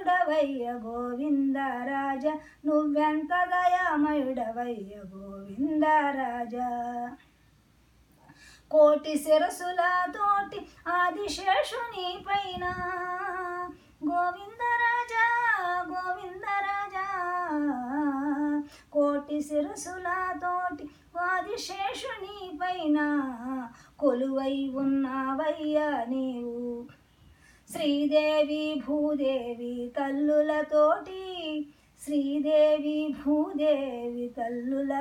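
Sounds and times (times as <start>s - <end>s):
elderly woman singing: 0.0s - 7.2s, 8.7s - 27.0s, 27.7s - 35.0s.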